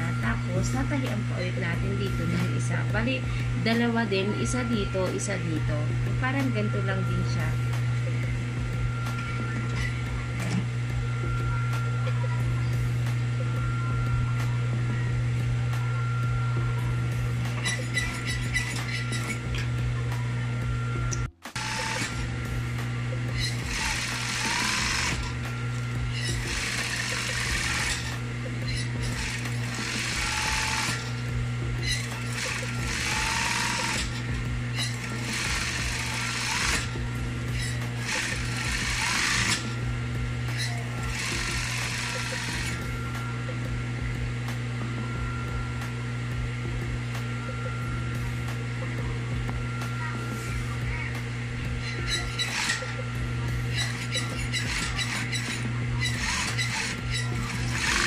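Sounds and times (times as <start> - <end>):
sewing machine motor humming: 0.0 - 44.3, 49.4 - 58.0
sewing machine stitching fabric: 23.7 - 25.3, 32.0 - 34.2.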